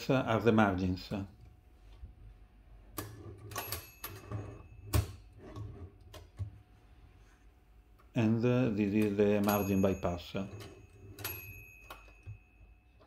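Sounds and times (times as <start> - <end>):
faint metallic ring: 9.4 - 13.0.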